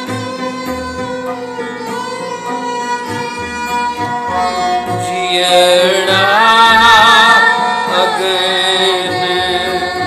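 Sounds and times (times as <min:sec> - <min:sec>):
bowed string instruments: 0:00.0 - 0:10.0.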